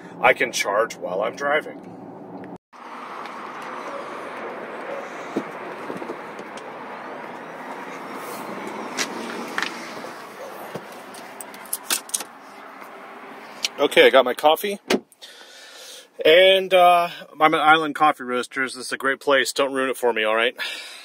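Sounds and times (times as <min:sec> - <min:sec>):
traffic noise: 0:00.0 - 0:16.2.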